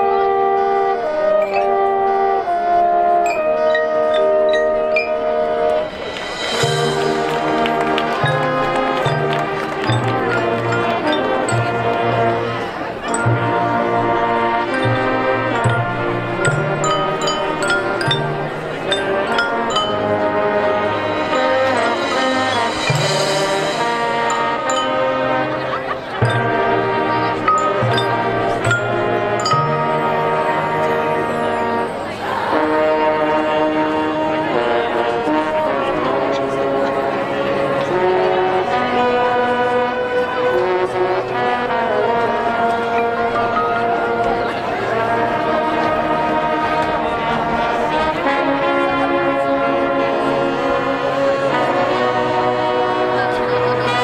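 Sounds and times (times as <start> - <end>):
marching band playing: 0.0 - 54.0
mallet percussion notes: 1.3 - 33.0, 40.1 - 48.0.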